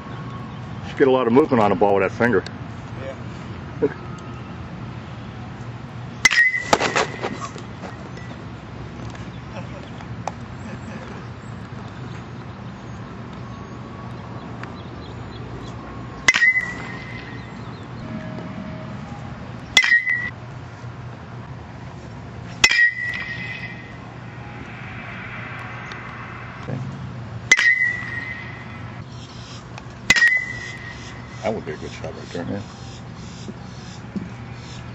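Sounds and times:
metal bat hitting balls: 6.2 - 8.3, 16.2 - 18.5, 19.7 - 20.3, 22.6 - 24.4, 27.5 - 29.1, 30.0 - 31.5.

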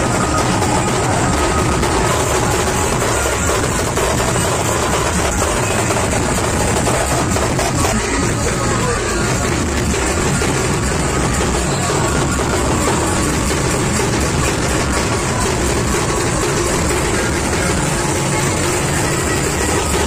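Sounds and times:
loud music: 0.0 - 20.0.

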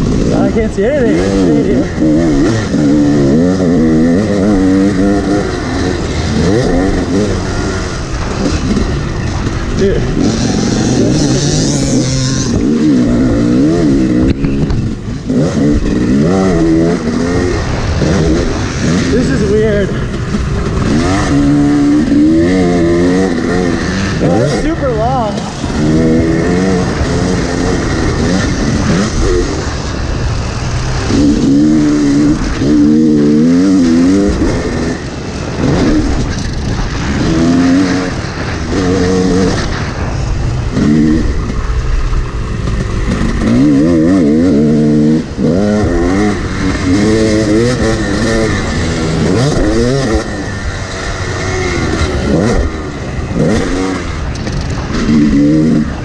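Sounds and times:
two-stroke dirt bike engine revving: 0.0 - 56.0.

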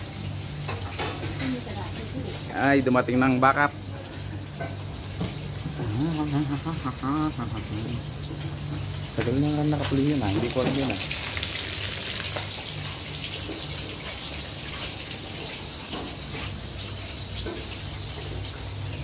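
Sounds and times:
food sizzling in hot oil: 6.4 - 19.0.

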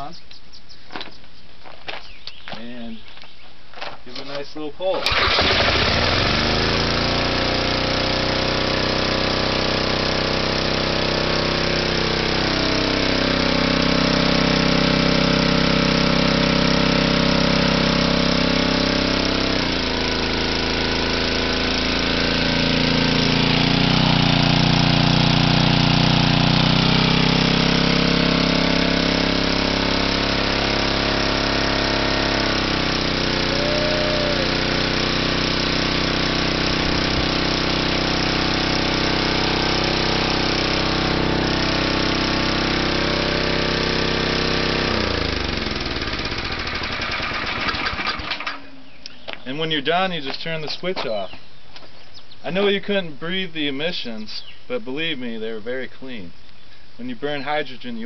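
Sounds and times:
generator engine running: 4.9 - 51.4.

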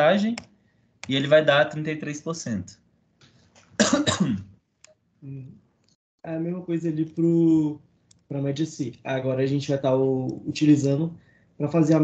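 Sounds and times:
person coughing: 3.8 - 4.6.

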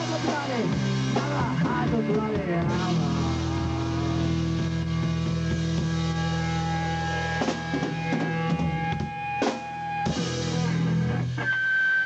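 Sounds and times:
distorted electric guitar chord: 2.6 - 11.6.

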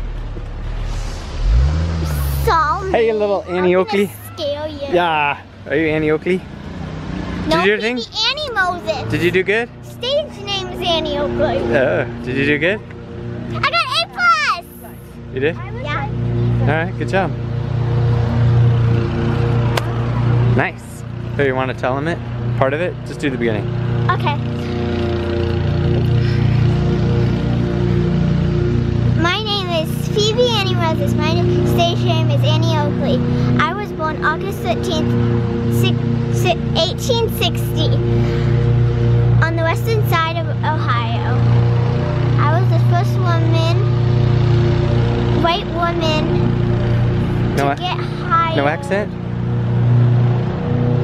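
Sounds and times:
vehicle engine accelerating: 0.0 - 51.0.

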